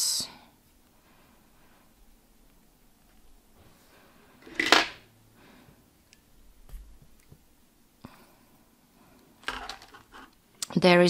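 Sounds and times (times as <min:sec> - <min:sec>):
faint handling noise: 0:09.4 - 0:10.4.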